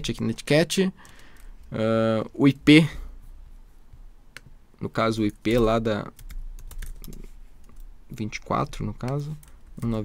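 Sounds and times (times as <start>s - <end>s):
computer keyboard typing: 5.2s - 7.9s, 8.7s - 10.0s.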